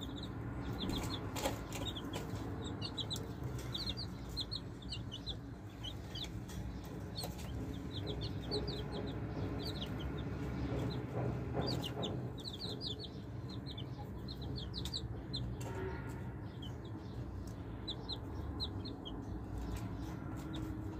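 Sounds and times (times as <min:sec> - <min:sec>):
baby chicks peeping: 0:00.0 - 0:20.9.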